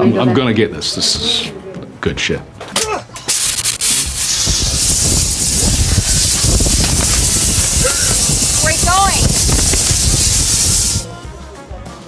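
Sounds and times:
rushing hiss of air: 3.3s - 11.1s.

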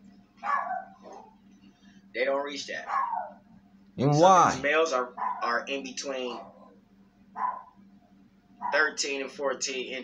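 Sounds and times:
dog barking: 0.4s - 1.4s, 2.8s - 3.4s, 5.2s - 5.6s, 7.4s - 7.8s, 8.6s - 9.0s.

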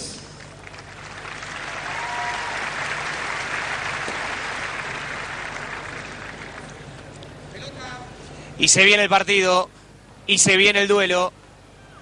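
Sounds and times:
stadium crowd applauding: 0.4s - 7.3s.

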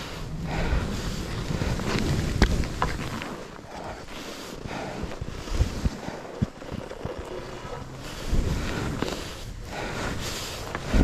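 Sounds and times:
wind buffeting microphone: 0.0s - 11.0s
skis hissing over snow: 7.3s - 11.0s.

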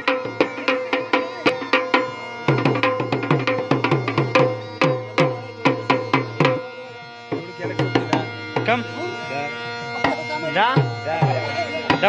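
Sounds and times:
dhol drum beating: 0.0s - 12.0s.

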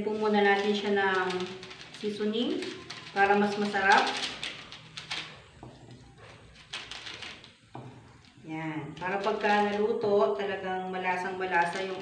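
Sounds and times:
plastic sachet crinkling: 0.1s - 10.0s, 11.3s - 12.0s.

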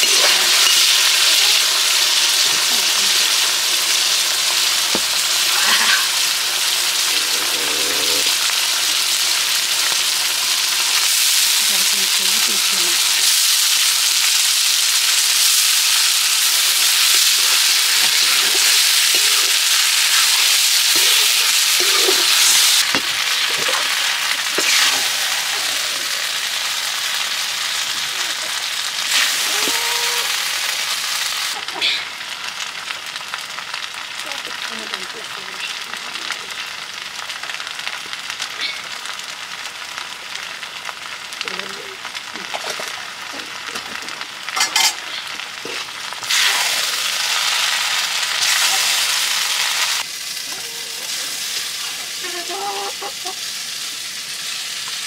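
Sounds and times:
food sizzling in a wok: 0.0s - 55.0s.

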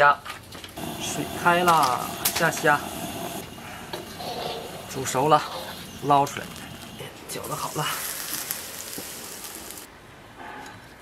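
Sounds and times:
quiet kitchen sounds: 0.0s - 11.0s
steam hissing: 0.8s - 9.9s.

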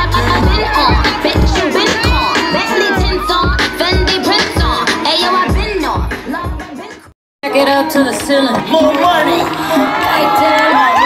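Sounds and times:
crowd cheering and shouting: 0.0s - 11.0s
loud hip-hop music: 0.0s - 11.0s.

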